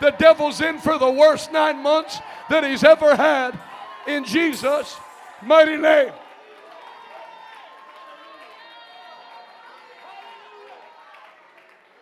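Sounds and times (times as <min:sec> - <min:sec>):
congregation praying aloud: 0:00.0 - 0:06.4.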